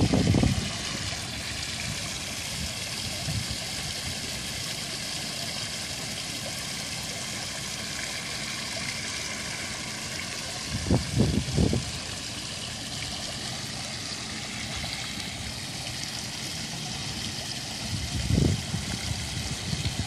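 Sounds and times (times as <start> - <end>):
fountain water splashing: 0.0 - 20.0.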